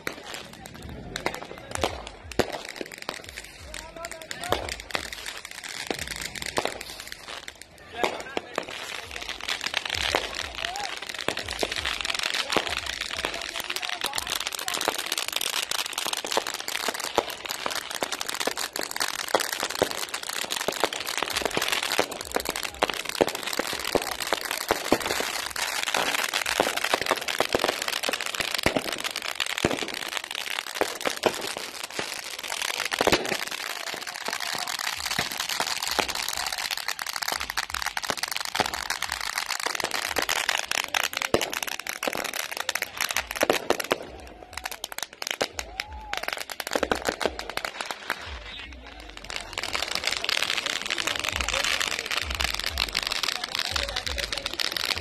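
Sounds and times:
fireworks crackling and banging: 0.0s - 55.0s.

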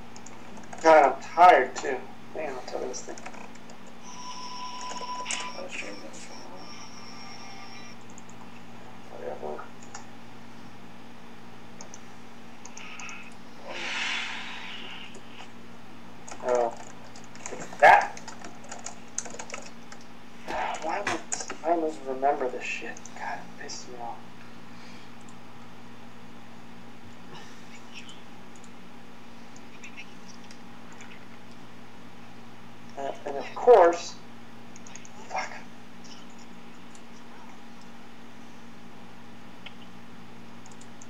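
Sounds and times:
computer keyboard clicks: 0.1s - 0.9s, 3.1s - 4.0s, 9.8s - 10.1s, 11.8s - 12.0s, 12.6s - 13.4s, 16.3s - 20.1s, 20.8s - 21.6s, 34.7s - 35.2s, 40.6s - 41.0s
thin steady high tone: 4.0s - 8.0s
wordless vocal sounds: 12.8s - 15.5s.

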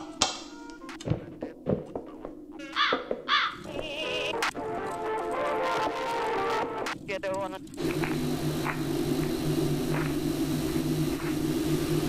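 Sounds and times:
crow cawing: 2.7s - 4.4s.

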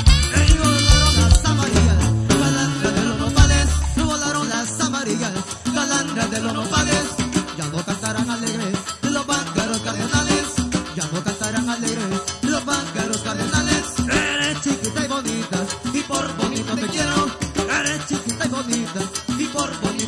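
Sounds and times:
metal guiro scraping: 0.0s - 4.6s
live folk band playing: 0.0s - 20.0s.

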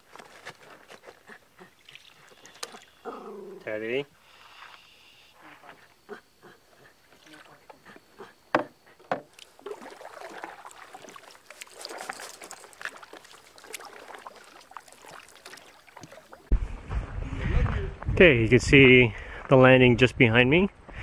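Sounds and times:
paddle splashing in water: 8.6s - 16.5s.

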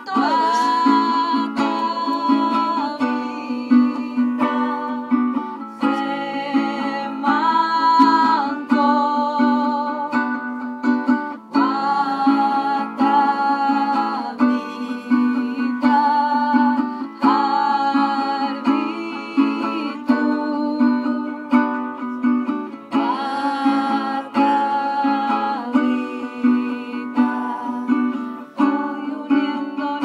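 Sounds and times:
guitar strumming: 0.0s - 18.8s
person singing: 0.0s - 30.0s.

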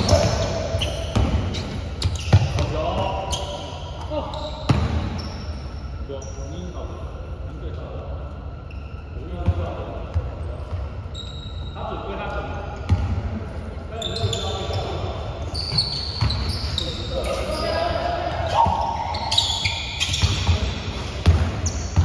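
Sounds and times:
shoe squeaks: 0.0s - 6.7s, 8.6s - 9.6s, 10.5s - 12.3s, 13.9s - 22.0s
players' voices: 11.8s - 21.4s.

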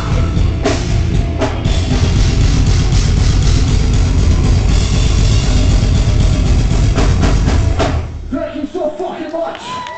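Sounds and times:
fast bass drum hits: 0.0s - 8.2s
distorted guitars: 0.0s - 8.8s.

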